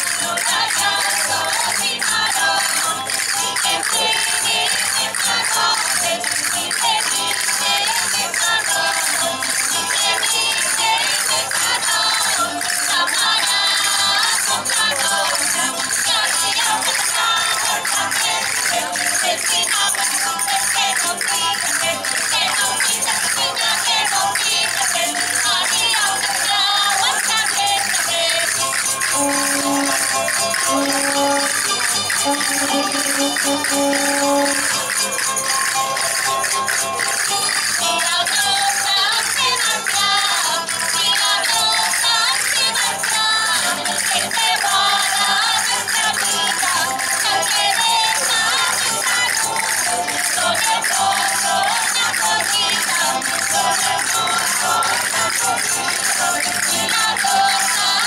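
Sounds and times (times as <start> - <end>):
percussion beat: 0.0 - 39.0, 39.7 - 58.0
folk dance band playing: 26.6 - 39.2, 43.2 - 58.0
plucked strings: 29.1 - 35.2.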